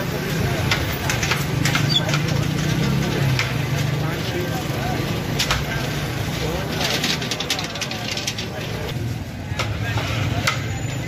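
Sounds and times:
traffic hum: 0.0s - 11.0s
clinks and clatters: 0.3s - 9.0s.

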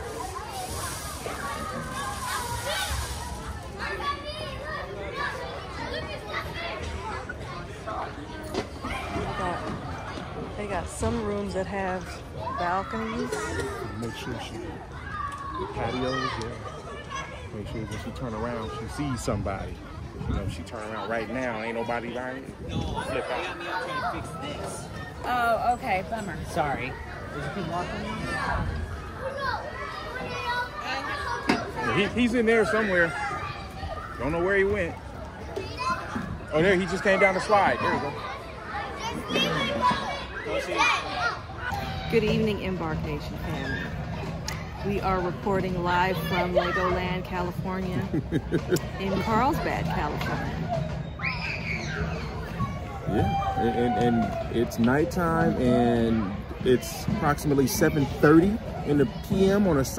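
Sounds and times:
children calling and chattering: 0.0s - 59.9s.

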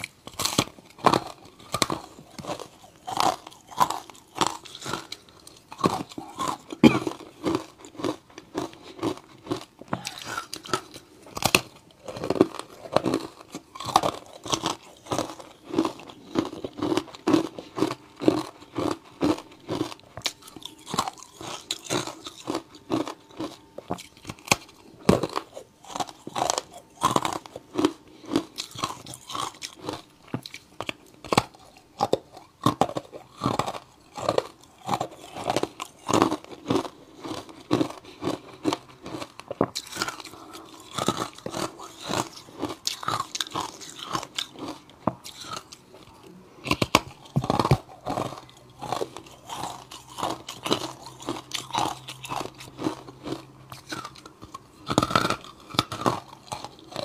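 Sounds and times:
crunching and chewing ice: 0.0s - 57.0s.

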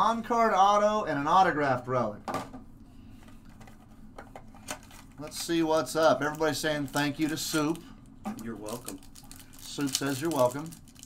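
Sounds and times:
card pack rustling: 6.2s - 11.0s.

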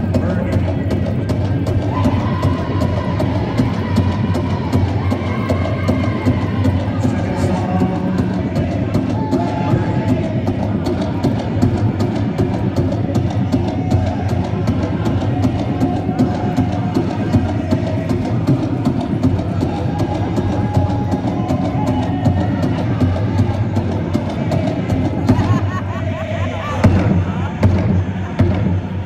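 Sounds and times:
big drum beating: 0.0s - 29.0s
group singing high-pitched: 1.9s - 29.0s.

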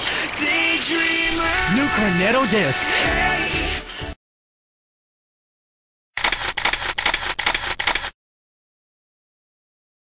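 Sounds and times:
rapid sharp clicks: 6.2s - 8.2s.

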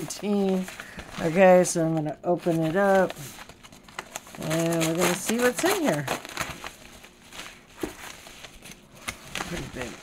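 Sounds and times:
paper envelope crinkling: 0.0s - 10.0s.

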